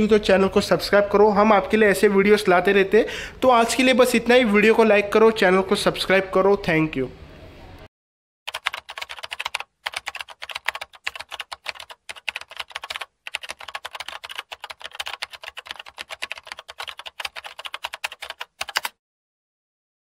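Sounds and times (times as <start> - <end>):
rapid continuous clicking: 8.5 - 19.0.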